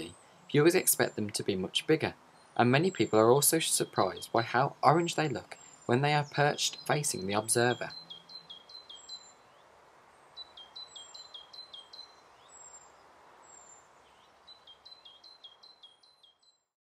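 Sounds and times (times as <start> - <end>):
soft background noise: 0.0 - 16.7
high down-slurred bird calls: 2.4 - 9.6
bird whistling song: 5.6 - 9.5, 10.4 - 12.9, 13.5 - 16.6.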